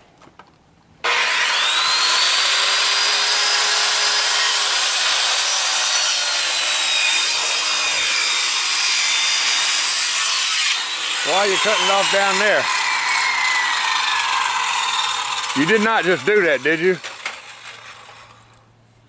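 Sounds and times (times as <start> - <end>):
circular saw cutting wood: 1.0 - 18.5.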